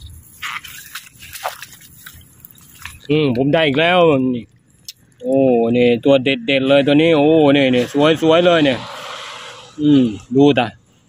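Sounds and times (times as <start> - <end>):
man speaking: 3.0 - 4.5, 5.2 - 8.9, 9.8 - 10.8.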